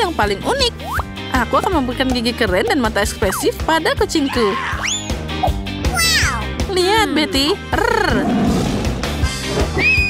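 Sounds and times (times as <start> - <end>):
upbeat background music: 0.0 - 10.0.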